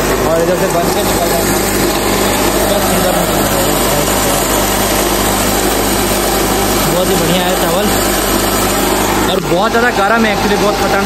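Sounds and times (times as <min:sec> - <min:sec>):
rice-milling machine droning: 0:00.0 - 0:11.0.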